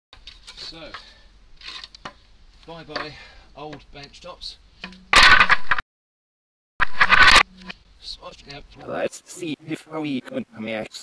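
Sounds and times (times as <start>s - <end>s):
wood scraping on stone: 0.2s - 2.3s.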